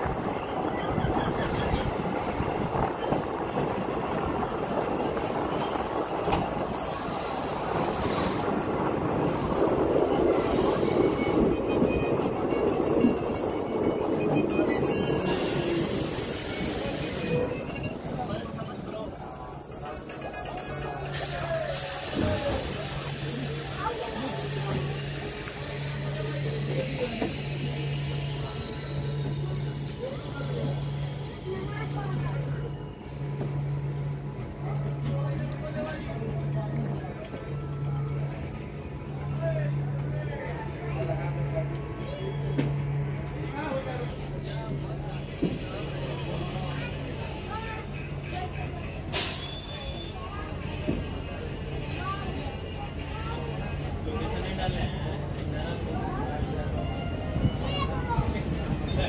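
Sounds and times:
train wheels rumbling on rails: 0:00.0 - 0:59.0
high-pitched wheel squeal: 0:06.3 - 0:22.6.

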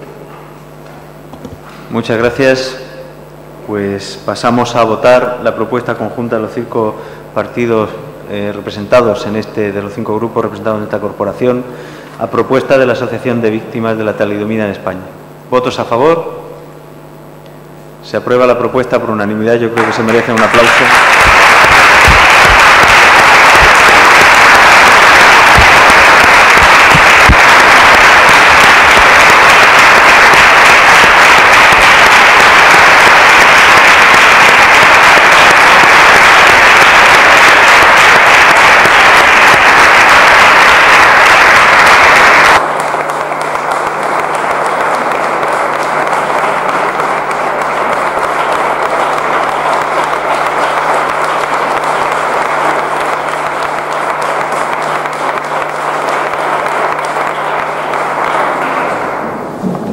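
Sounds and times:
audience applause: 0:19.8 - 0:59.9.

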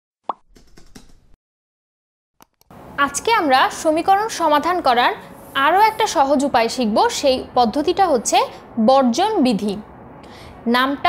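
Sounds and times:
keyboard typing clicks: 0:00.5 - 0:01.2.

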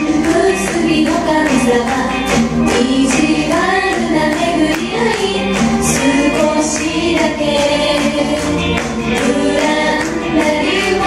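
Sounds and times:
musical accompaniment: 0:00.0 - 0:11.0
women singing into microphones: 0:00.0 - 0:11.0.

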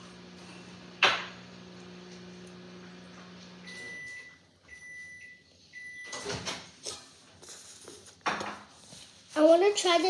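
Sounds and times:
microwave oven humming: 0:00.0 - 0:06.7
microwave high beeps: 0:03.6 - 0:06.3.

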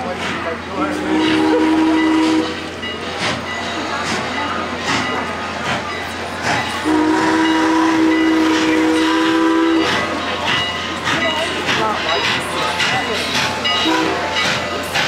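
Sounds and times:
locomotive exhaust chuffs: 0:00.0 - 0:15.0
steam locomotive whistle: 0:00.8 - 0:02.8, 0:06.8 - 0:10.2, 0:13.8 - 0:14.6.

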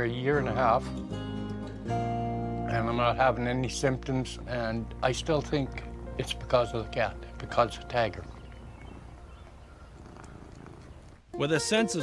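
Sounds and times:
cat purring: 0:04.5 - 0:11.2.

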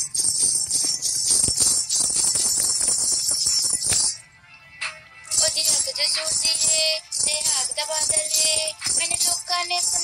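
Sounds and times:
clattering beat: 0:00.0 - 0:04.2, 0:04.8 - 0:10.0
jingling percussion: 0:00.0 - 0:10.0.

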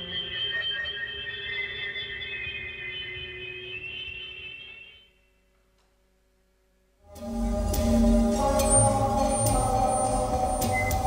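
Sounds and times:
synthesizer drone tones: 0:00.0 - 0:05.5, 0:07.0 - 0:11.0.

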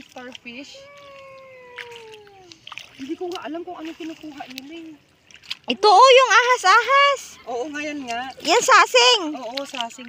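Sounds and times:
person's high voice oooh gliding down: 0:00.8 - 0:02.6.

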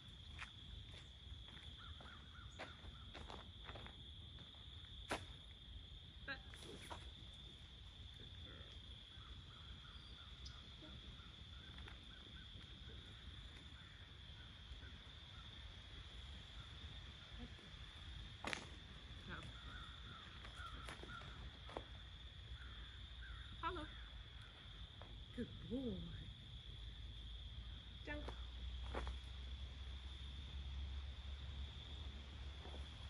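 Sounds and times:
insects droning: 0:00.0 - 0:33.0
distant bird calls: 0:19.2 - 0:21.9.

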